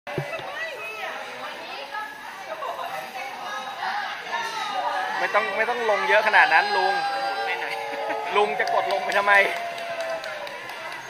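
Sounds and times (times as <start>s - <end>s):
people talking and chattering: 0.1s - 11.0s.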